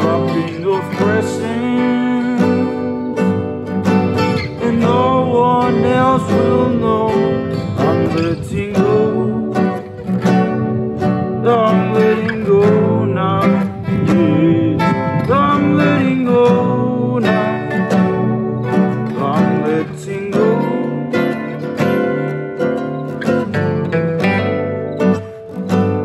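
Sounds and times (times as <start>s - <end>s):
man singing: 0.0s - 3.4s, 4.1s - 22.4s
acoustic guitars strummed and picked: 0.0s - 26.0s.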